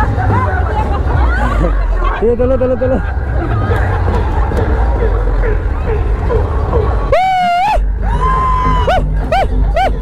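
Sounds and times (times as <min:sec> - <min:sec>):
crowd talking and calling out: 0:00.0 - 0:10.0
low rumble: 0:00.0 - 0:10.0.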